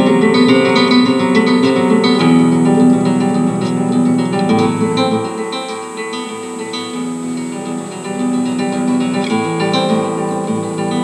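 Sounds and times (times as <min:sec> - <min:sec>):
solo classical guitar: 0:00.0 - 0:11.0.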